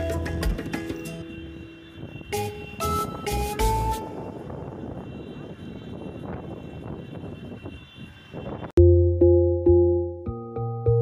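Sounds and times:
car engine and road noise: 0:00.0 - 0:09.4.

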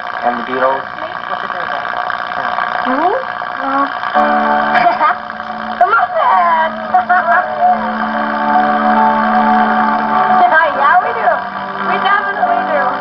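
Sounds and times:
steady low note: 0:00.2 - 0:13.0.

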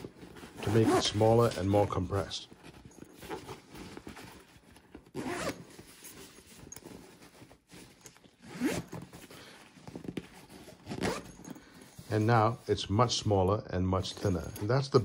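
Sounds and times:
zipper being pulled: 0:00.0 - 0:01.7, 0:02.8 - 0:12.3.

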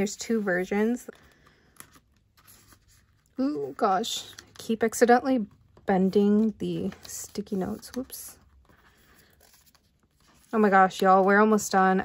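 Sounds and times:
paper rustling: 0:00.0 - 0:11.8.

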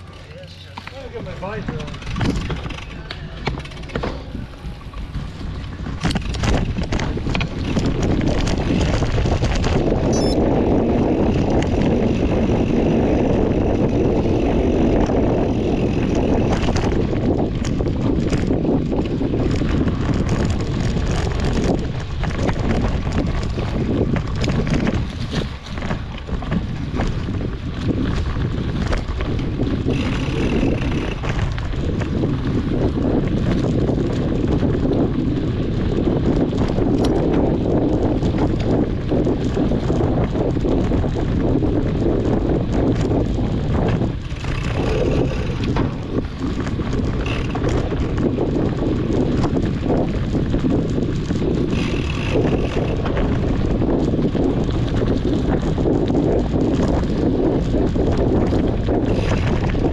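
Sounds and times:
bike clicks and knocks: 0:00.0 - 0:59.9
tyres rolling on dirt trail: 0:00.0 - 0:59.9
wind buffeting microphone: 0:00.0 - 0:59.9.

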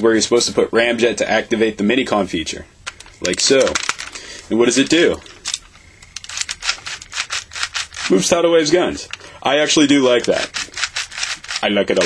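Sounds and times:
plastic toy mechanism clicking: 0:04.8 - 0:08.4, 0:10.0 - 0:12.0.

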